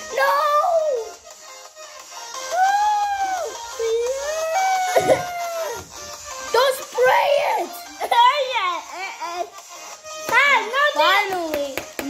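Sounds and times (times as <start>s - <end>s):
child wailing: 2.5s - 5.9s.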